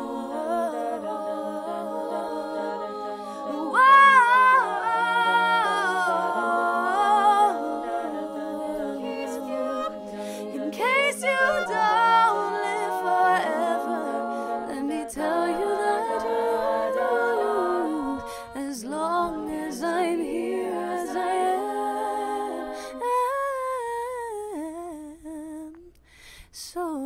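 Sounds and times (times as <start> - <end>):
women singing a cappella: 0.0 - 27.0
woman singing unaccompanied: 10.7 - 20.4, 26.6 - 27.0.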